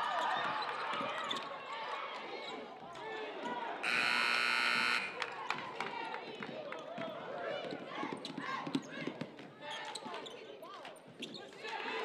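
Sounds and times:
shot clock buzzer: 3.8 - 5.2.

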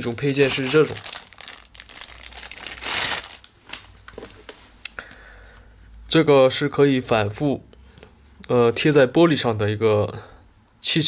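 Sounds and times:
plastic bag crinkling: 0.0 - 4.4.

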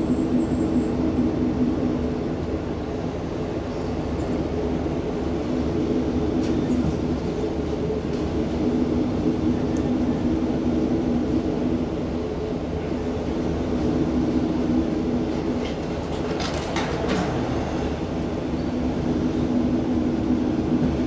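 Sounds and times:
train engine drone: 0.0 - 21.0
wheel and track rumble: 0.0 - 21.0.

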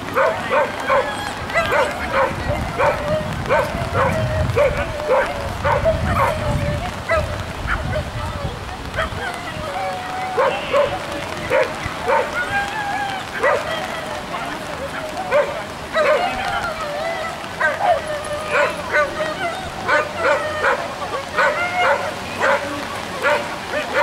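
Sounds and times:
small dog yipping: 0.2 - 6.4.

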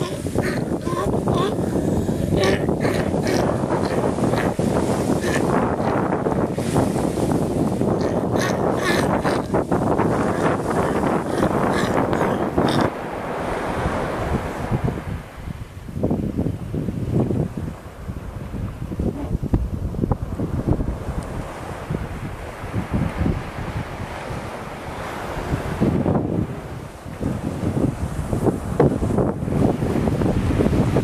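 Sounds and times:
steady wind: 0.0 - 31.0
surf washing on beach: 0.0 - 31.0
wind buffeting microphone: 0.0 - 31.0.

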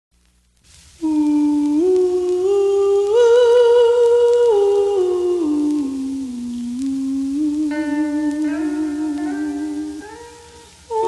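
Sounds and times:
vinyl surface noise: 0.2 - 11.0
vocal group humming harmony: 1.0 - 11.0.

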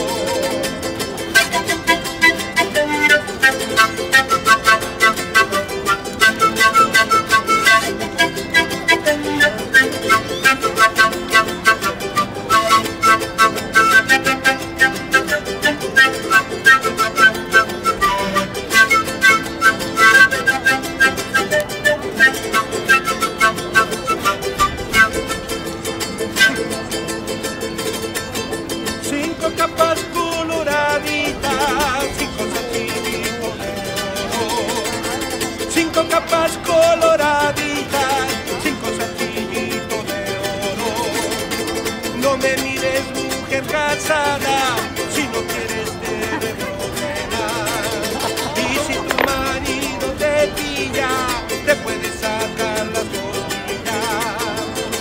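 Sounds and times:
acoustic guitar: 0.0 - 55.0
panpipes: 1.3 - 25.6.

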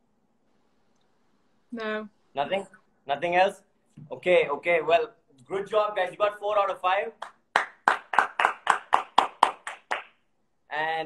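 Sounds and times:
person clapping hands: 7.2 - 10.2.

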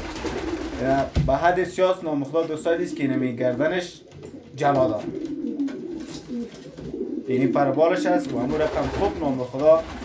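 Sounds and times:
pigeons cooing: 0.0 - 0.8, 4.0 - 10.0.

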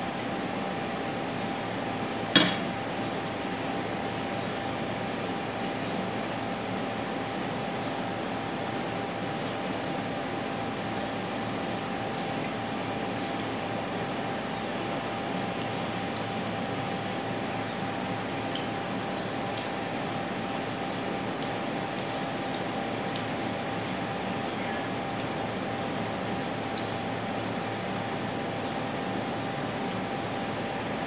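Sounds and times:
indoor machine hum: 0.0 - 31.0.

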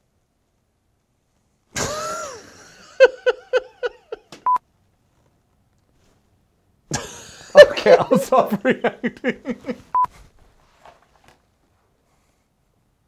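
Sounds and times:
person laughing: 1.8 - 4.4, 6.9 - 10.0.

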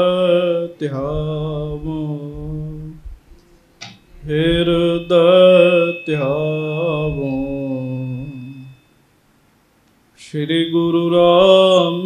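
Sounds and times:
man chanting: 0.0 - 3.0, 4.2 - 8.7, 10.2 - 12.0
faint high-pitched tone: 3.3 - 9.2.

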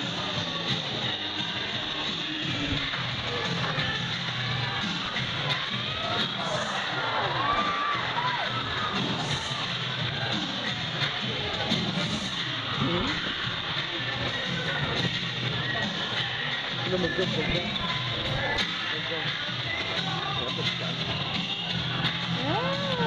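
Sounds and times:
background music: 0.0 - 23.0
children shouting and cheering: 6.5 - 9.0, 22.3 - 23.0.

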